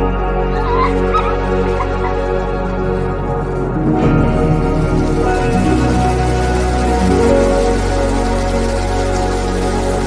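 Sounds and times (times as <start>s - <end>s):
slow ambient music: 0.0s - 10.0s.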